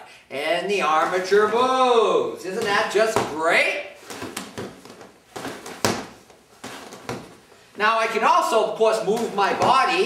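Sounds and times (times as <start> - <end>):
hand slapping training bag: 2.5 - 7.4, 9.0 - 10.0.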